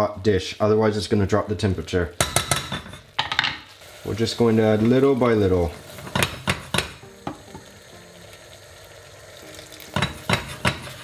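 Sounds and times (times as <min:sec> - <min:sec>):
rice simmering in stock: 0:03.7 - 0:11.0.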